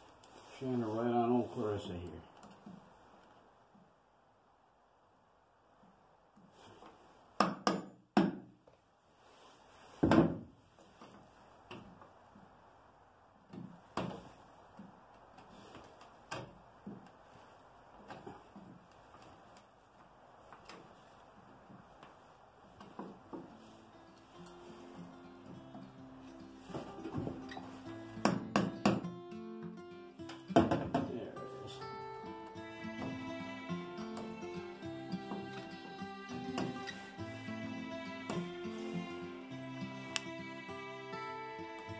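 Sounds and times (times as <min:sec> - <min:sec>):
plucked guitar music: 0:23.7 - 0:41.9.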